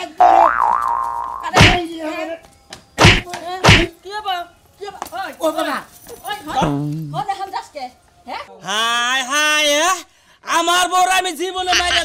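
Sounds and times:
cartoon boing with wobbling pitch: 0.2 - 1.8
loud comic thumps: 1.6 - 1.8, 3.0 - 3.9.

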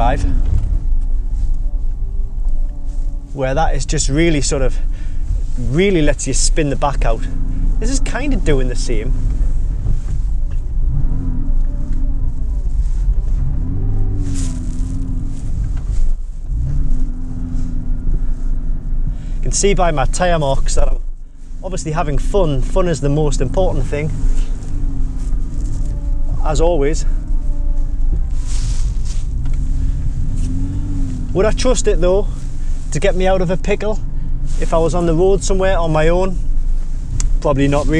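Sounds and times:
car engine revving: 0.0 - 37.9.

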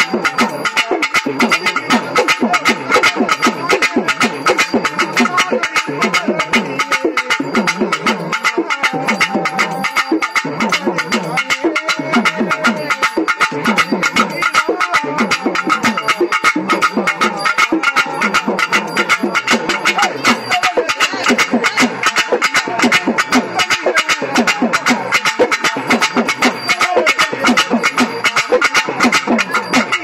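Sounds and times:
fast ritual drumming: 0.0 - 30.0.

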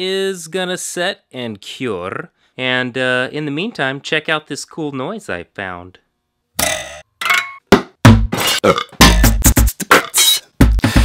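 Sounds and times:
music with heavy bass beat: 8.0 - 11.0
rasping burp-like noise: 8.4 - 10.4.

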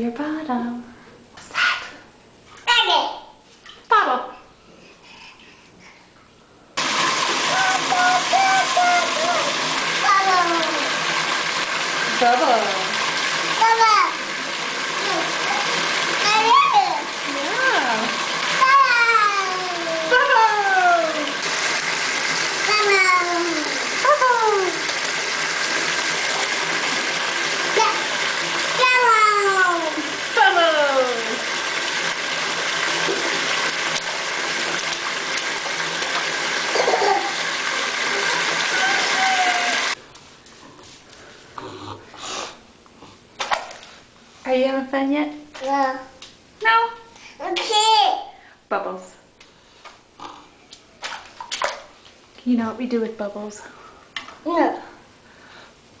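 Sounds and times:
bathtub spout running water: 6.8 - 40.0
toddler calling: 38.7 - 39.9.

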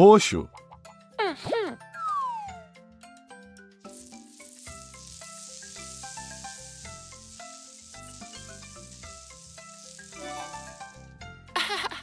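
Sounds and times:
plucked background music: 0.0 - 12.0.

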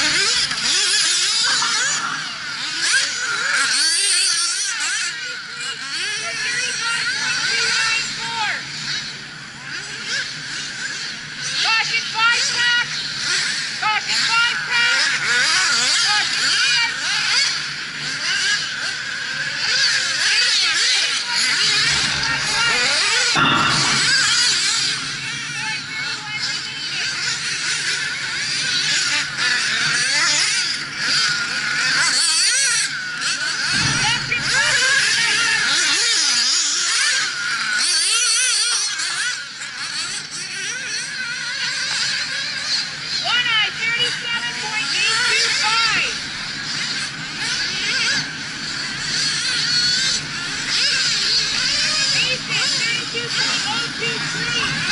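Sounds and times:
rc buggy engines whining: 0.0 - 54.9.

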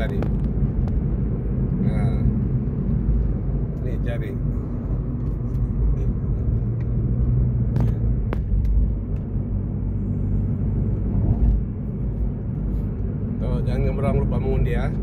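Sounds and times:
car driving rumble: 0.0 - 15.0.

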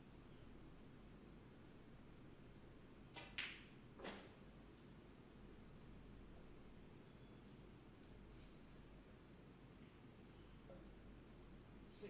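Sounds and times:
cue striking ball click: 3.2 - 3.7.

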